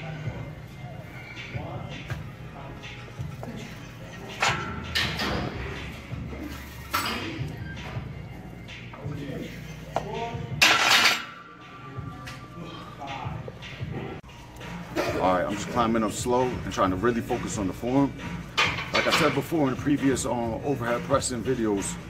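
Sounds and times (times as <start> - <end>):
gym background music: 0.0 - 22.0.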